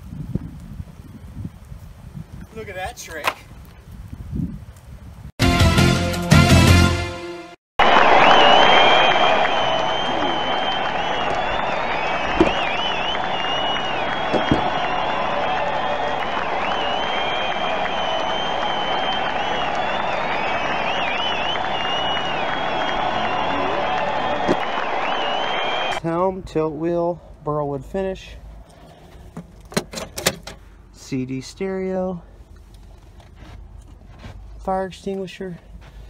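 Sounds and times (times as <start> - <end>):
crowd cheering and applauding: 7.8 - 26.0
shrill whistles: 7.8 - 26.0.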